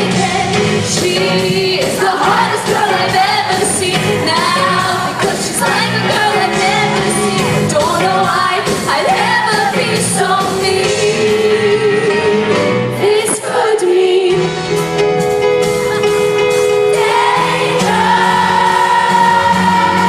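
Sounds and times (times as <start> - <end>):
live pop-rock band: 0.0 - 20.0.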